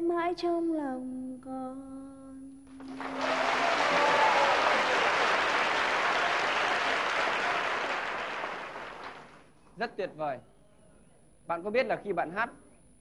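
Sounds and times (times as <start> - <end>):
audience applauding: 2.8 - 9.5.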